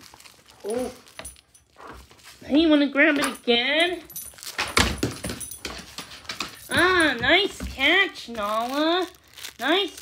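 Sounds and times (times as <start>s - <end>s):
dog claws scrambling on wood floor: 3.1s - 8.9s.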